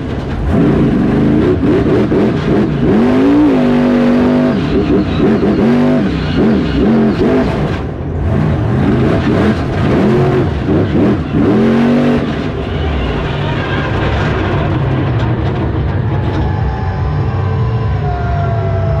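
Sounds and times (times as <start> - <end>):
truck engine revving: 0.0 - 19.0.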